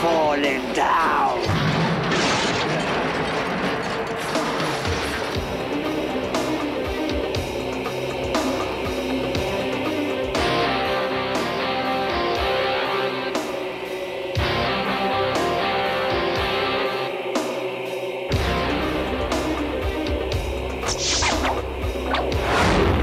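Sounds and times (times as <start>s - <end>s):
rock guitar music: 4.8s - 23.0s
steady drum beat: 5.3s - 11.5s.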